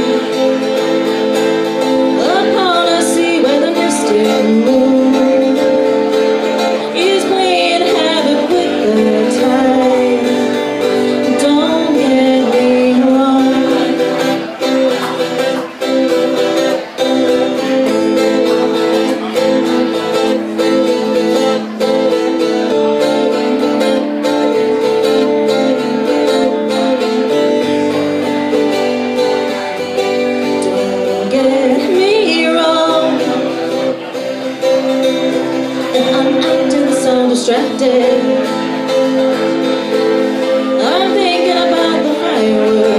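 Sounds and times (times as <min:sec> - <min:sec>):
acoustic guitar strumming: 0:00.0 - 0:42.9
woman singing: 0:01.8 - 0:14.7, 0:30.1 - 0:34.0, 0:35.7 - 0:39.3, 0:40.2 - 0:42.9.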